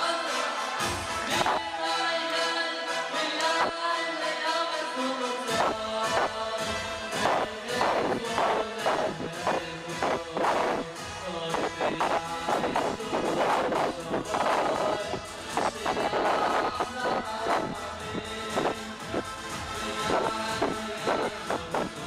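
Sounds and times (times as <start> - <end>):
men singing wordless melody: 0.0 - 22.0.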